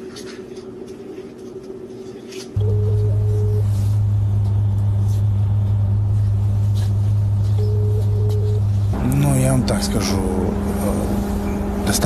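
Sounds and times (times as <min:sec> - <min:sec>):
loud low-pitched hum: 0:02.6 - 0:12.0.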